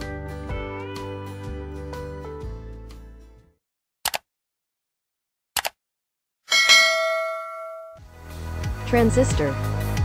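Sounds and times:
notification bell chime: 6.5s - 8.0s.

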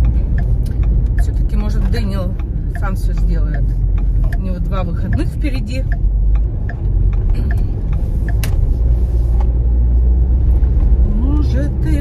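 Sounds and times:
car road and engine noise: 0.0s - 12.0s.

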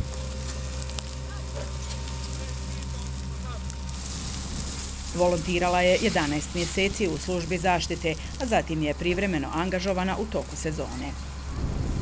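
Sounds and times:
dry grass burning with crackles: 0.0s - 12.0s
fire truck engine running: 0.0s - 12.0s.

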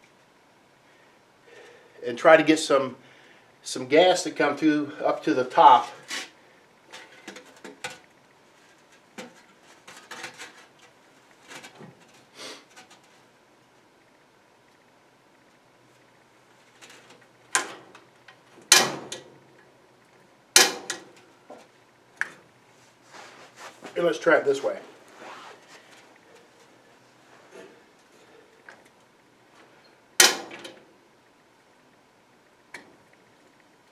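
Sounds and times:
fireplace control clicks and knocks: 18.6s - 19.3s.

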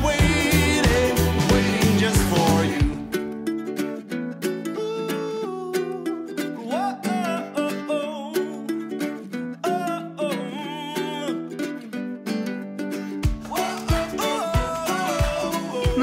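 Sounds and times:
person singing: 0.0s - 12.1s, 13.2s - 16.0s
plucked strings music: 0.0s - 16.0s.

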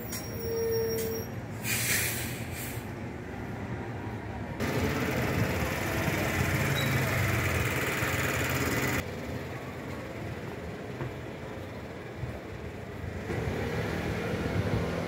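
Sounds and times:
street traffic noise: 0.0s - 15.0s
vehicle engine running: 4.6s - 13.5s.

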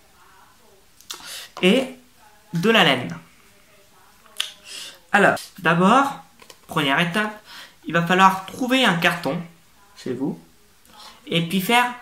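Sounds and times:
man speaking: 1.6s - 3.3s, 5.1s - 10.5s, 11.3s - 12.0s.

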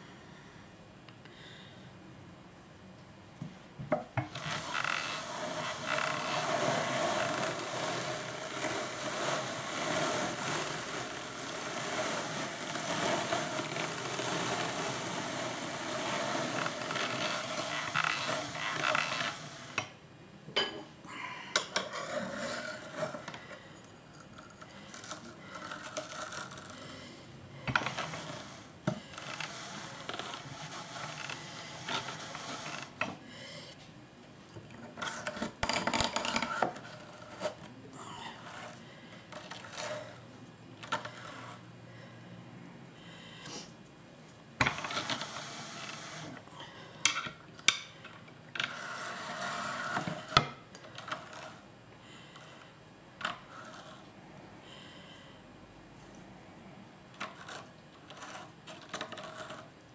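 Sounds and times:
drum carder scratching: 4.3s - 19.8s.

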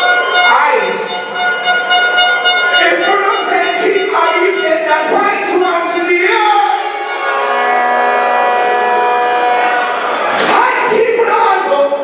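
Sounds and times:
siren effect steady note: 0.0s - 4.9s.

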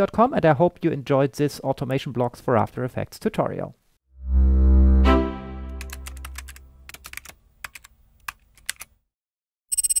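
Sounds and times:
low tone: 4.2s - 6.8s
keyboard key clicks: 5.8s - 8.9s.

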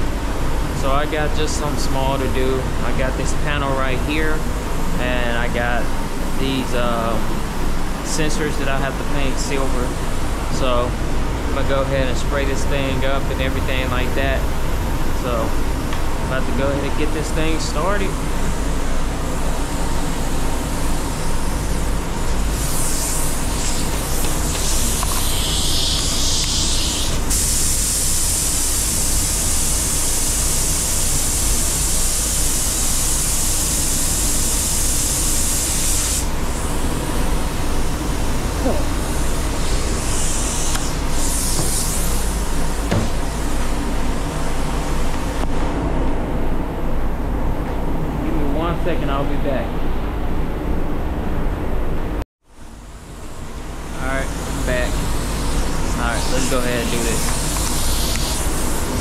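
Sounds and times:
low rumble of air flow: 0.0s - 25.1s, 36.3s - 59.0s
spray gun hissing: 16.4s - 45.4s, 53.0s - 59.0s.

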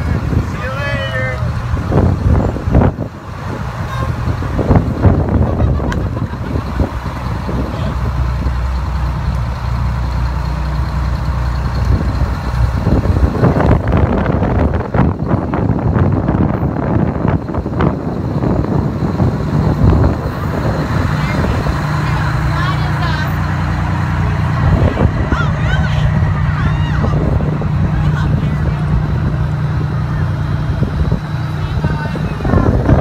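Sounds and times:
fire engine rumbling past: 0.0s - 33.0s.

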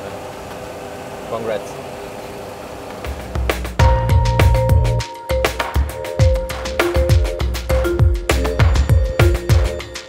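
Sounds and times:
music with deep bass and drums: 3.0s - 10.0s.

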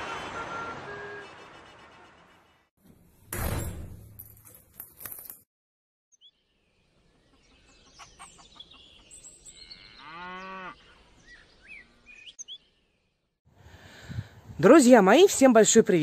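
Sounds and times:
cow mooing: 9.7s - 10.8s.

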